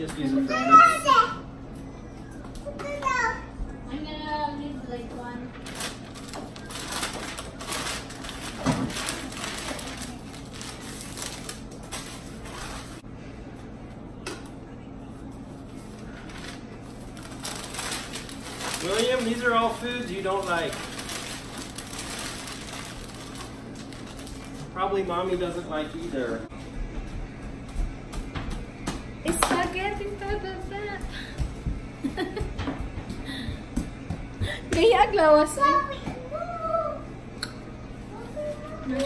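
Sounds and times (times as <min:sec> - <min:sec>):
child's voice: 0:00.5 - 0:01.5, 0:02.6 - 0:03.6, 0:35.5 - 0:37.1, 0:38.1 - 0:39.0
packing paper rustling and crinkling: 0:05.5 - 0:13.0, 0:15.8 - 0:26.2.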